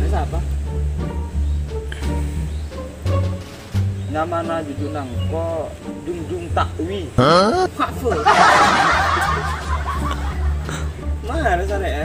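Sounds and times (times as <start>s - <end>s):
burst of laughter: 7.2s - 11.0s.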